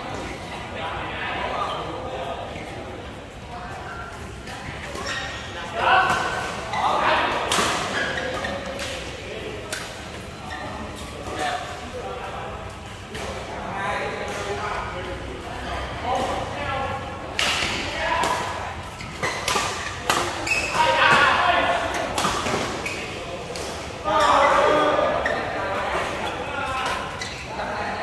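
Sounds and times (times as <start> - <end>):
players' voices and calls: 0.0 - 28.0
rackets hitting shuttlecock: 19.1 - 21.4.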